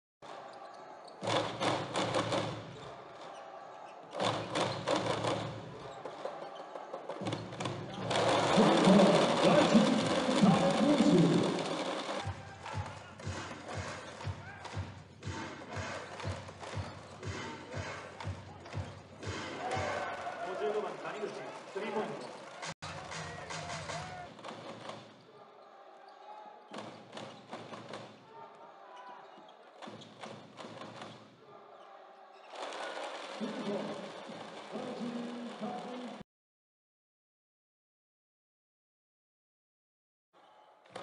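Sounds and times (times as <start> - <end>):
arena crowd noise: 0.2 - 36.2.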